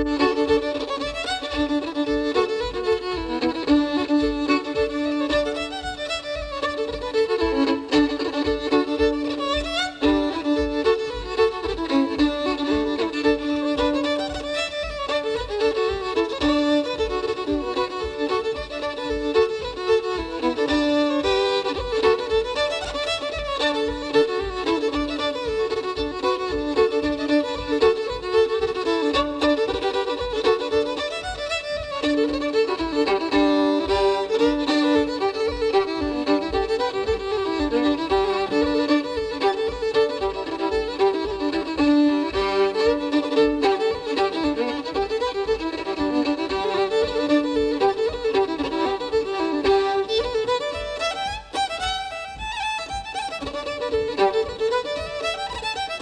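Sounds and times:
fiddle playing a fast reel: 0.0 - 56.0
low accompaniment beat: 0.0 - 56.0.

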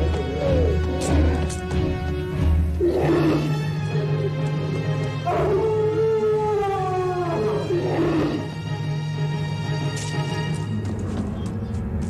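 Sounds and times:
animal howling: 0.0 - 1.3, 2.8 - 8.6
low music drone: 0.0 - 12.0.

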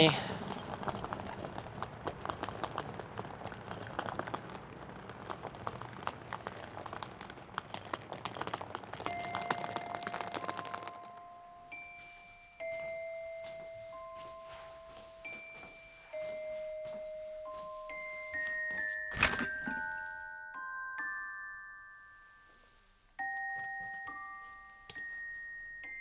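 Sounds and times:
suitcase wheels rattling on pavement: 0.0 - 11.9
glockenspiel-like chime notes: 9.1 - 26.0.

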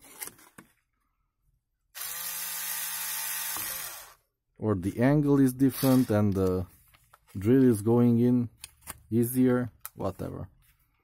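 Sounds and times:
electric drill drilling plastic: 2.0 - 4.2, 5.8 - 6.2.

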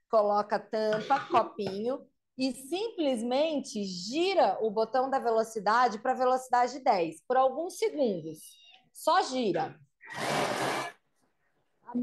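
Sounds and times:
mixer blades whirring: 10.0 - 11.0.

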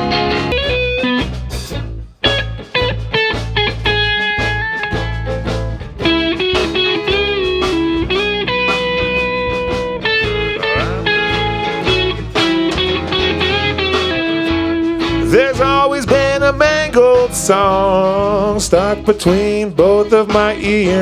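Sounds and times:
bass guitar: 0.0 - 21.0
electric guitar bending melody notes: 0.0 - 21.0
steady drum beat: 0.5 - 21.0.

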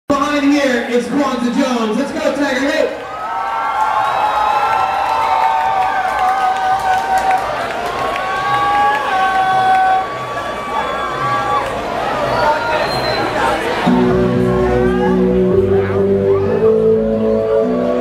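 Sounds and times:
crowd cheering and screaming: 3.0 - 18.0.

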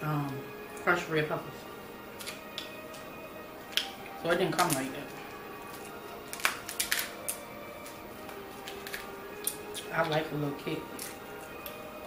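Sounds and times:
faint music: 0.0 - 12.0
crab shells cracking: 2.1 - 11.9.

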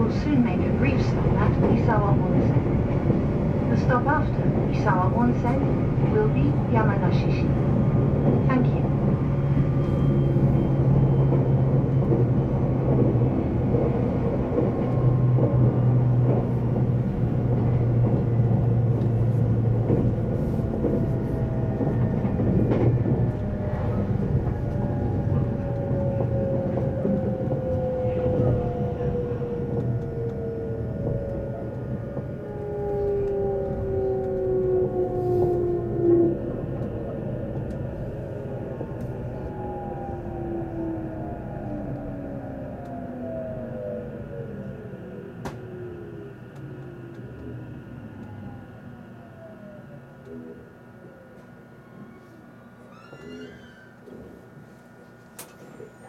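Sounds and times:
wheels rumbling on rail: 0.0 - 56.0.

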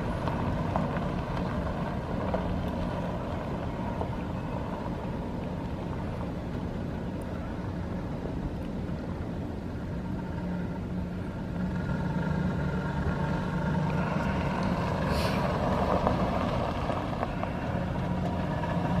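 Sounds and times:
truck engine running: 0.0 - 19.0.

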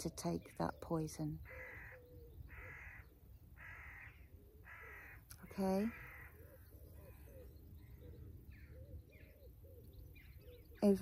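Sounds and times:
distant bird calls: 0.0 - 11.0.

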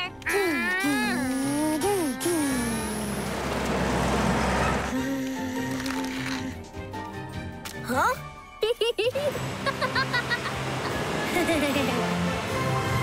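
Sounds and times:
cartoon background music: 0.0 - 3.3, 4.6 - 13.0.

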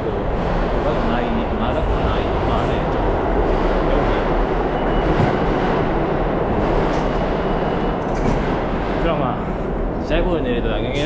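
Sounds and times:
subway train rumble: 0.0 - 11.0.

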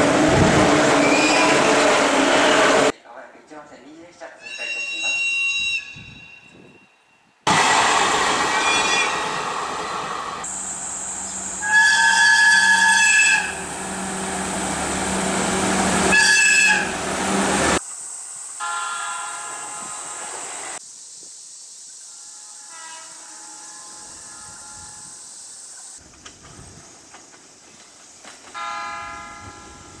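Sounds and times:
train running noise: 0.0 - 2.9, 7.5 - 20.8, 22.2 - 30.0
train horn blasts: 11.6 - 14.1, 16.0 - 17.4, 18.6 - 20.3, 22.2 - 25.2, 28.5 - 30.0.

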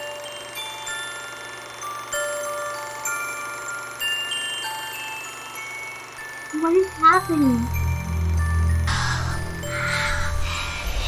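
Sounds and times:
ringing chime tones: 2.2 - 10.7.

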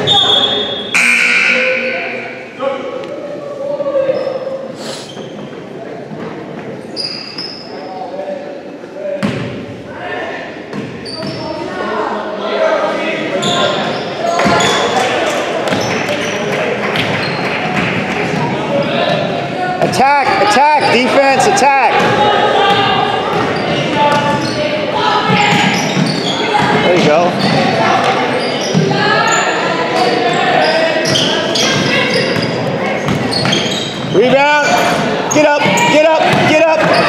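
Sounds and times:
sneakers squeaking: 0.0 - 2.6, 3.9 - 8.0, 9.2 - 9.7, 10.7 - 11.8, 13.3 - 37.0
indistinct echoing voices: 0.0 - 37.0.

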